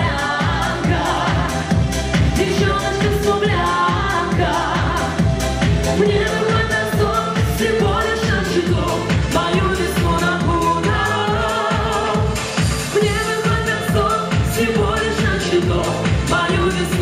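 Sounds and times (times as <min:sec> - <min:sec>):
man and woman singing duet: 0:00.0 - 0:05.2, 0:05.9 - 0:17.0
amplified backing music with beat: 0:00.0 - 0:17.0.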